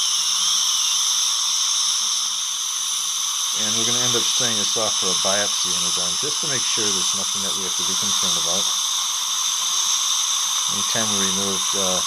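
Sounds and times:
dental suction hissing: 0.0s - 12.0s
faint low hum: 3.6s - 8.7s, 10.7s - 12.0s.

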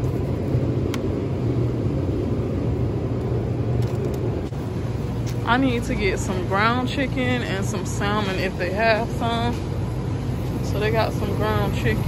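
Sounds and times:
low rumble and hum: 0.0s - 12.0s.

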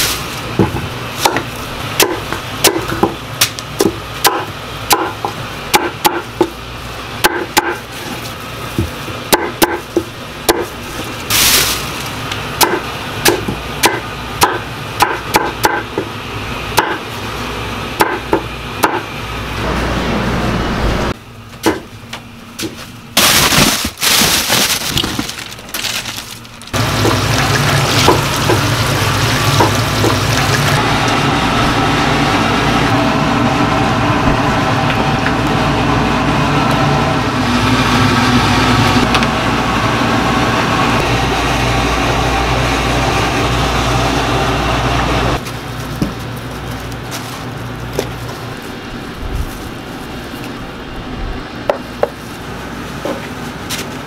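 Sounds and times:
knife chopping on wooden board: 12.6s - 16.1s
loud water splashing: 26.8s - 30.8s.

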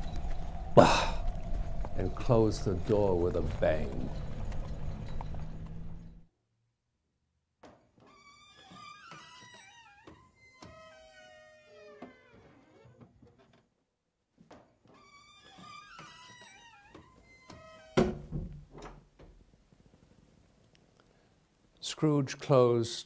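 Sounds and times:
wooden door shutting: 14.5s - 19.4s.

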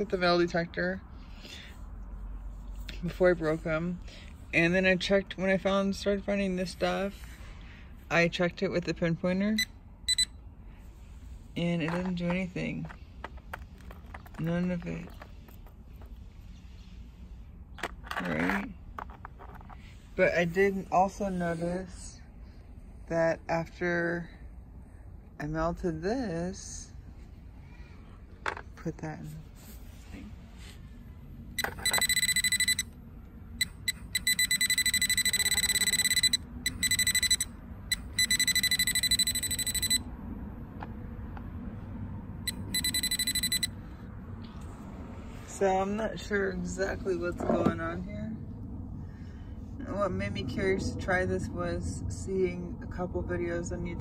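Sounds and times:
metal detector pulsing beep: 9.6s - 10.4s, 31.6s - 32.9s, 33.6s - 40.1s, 42.5s - 43.8s.

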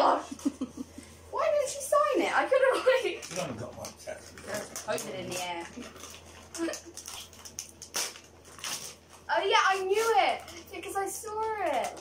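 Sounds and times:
wrapping paper tearing and crinkling: 4.2s - 12.0s.

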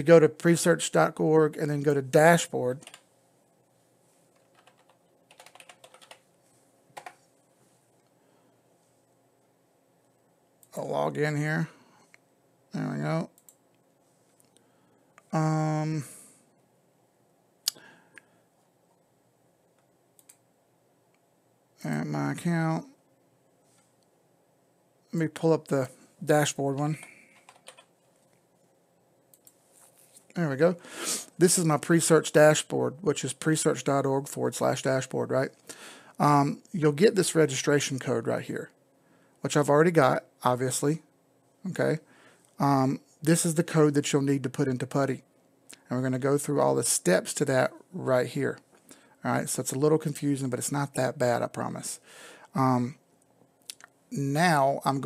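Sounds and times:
typing on computer keyboard: 2.8s - 3.0s, 4.4s - 6.2s, 7.0s - 7.2s, 27.0s - 27.9s.

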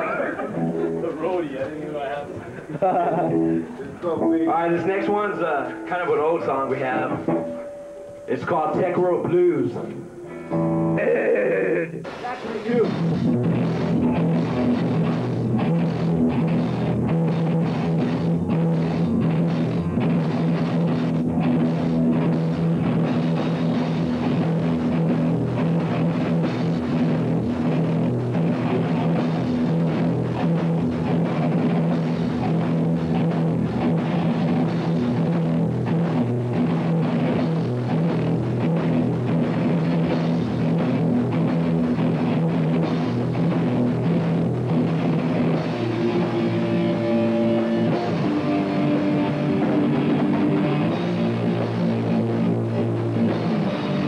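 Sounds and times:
bass guitar: 0.0s - 54.0s
drum kit: 0.0s - 54.0s
electric guitars: 0.0s - 54.0s.

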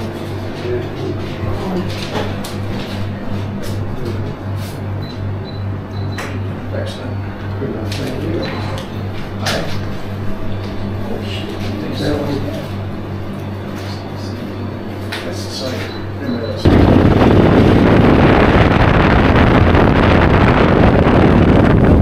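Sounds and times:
low pulsing hum: 16.6s - 22.0s.

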